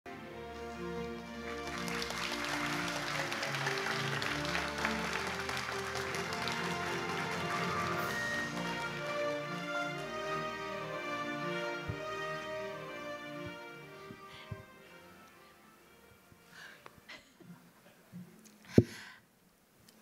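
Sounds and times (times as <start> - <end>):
stage music: 0.1 - 17.0
audience applauding: 1.2 - 11.4.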